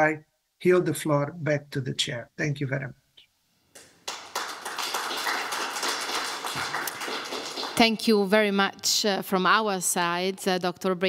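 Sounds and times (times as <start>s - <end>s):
audience applauding: 3.8s - 8.1s.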